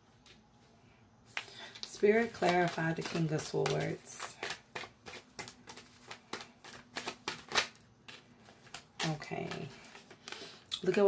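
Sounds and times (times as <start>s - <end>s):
cards being shuffled: 1.3s - 11.0s.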